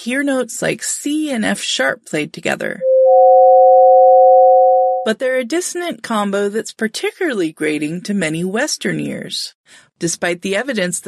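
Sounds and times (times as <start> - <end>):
high sine tone: 2.8 - 5.1
low sine tone: 2.8 - 5.1.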